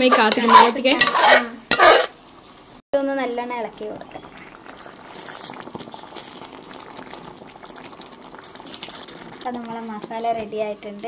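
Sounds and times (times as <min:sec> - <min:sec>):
wooden spatula stirring: 0:00.0 - 0:02.1, 0:03.9 - 0:11.0
thick gravy bubbling and popping: 0:02.3 - 0:11.0.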